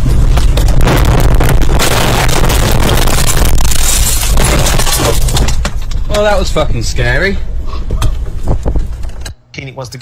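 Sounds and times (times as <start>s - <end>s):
car crashing and rolling over: 0.3s - 6.0s.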